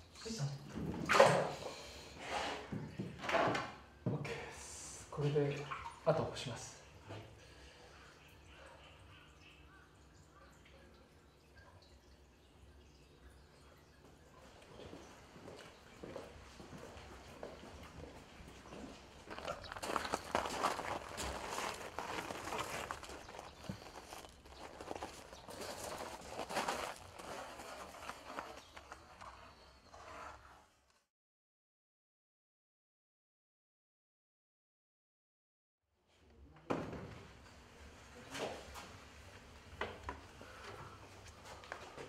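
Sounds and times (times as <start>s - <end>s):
footsteps on gravel: 18.7s - 29.4s.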